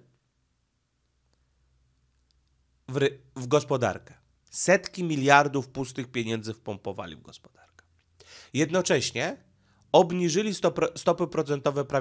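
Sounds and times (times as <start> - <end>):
faint soft clicks: 1.0 - 2.6.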